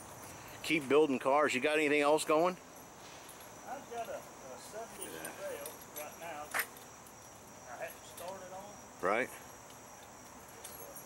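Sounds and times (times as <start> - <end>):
men talking: 0.6 - 2.6, 3.6 - 6.8, 7.6 - 9.5.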